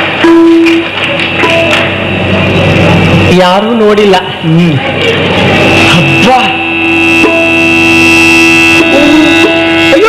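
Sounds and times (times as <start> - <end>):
reedy drone: 0.0 - 10.0.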